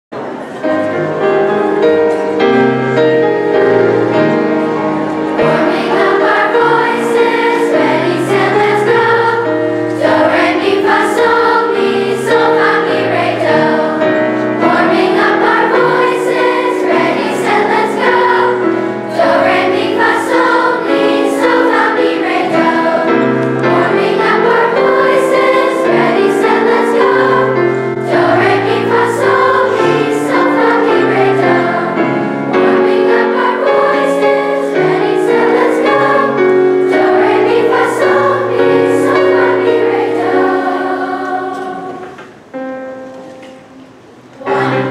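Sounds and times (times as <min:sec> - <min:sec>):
keyboard piano accompaniment: 0:00.1 - 0:44.9
children's chorus singing: 0:00.2 - 0:44.9.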